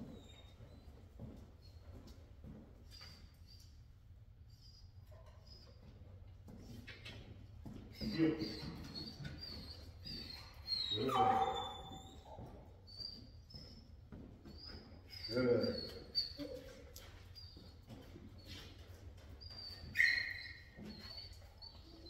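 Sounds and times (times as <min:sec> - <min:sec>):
dog whining: 0:08.0 - 0:13.8, 0:14.5 - 0:17.7, 0:19.4 - 0:22.0.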